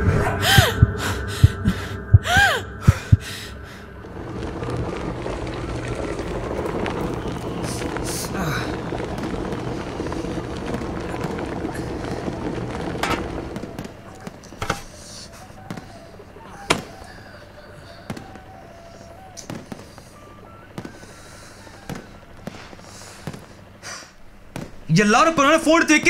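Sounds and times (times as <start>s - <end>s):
firecrackers cracking: 2.9s - 26.0s.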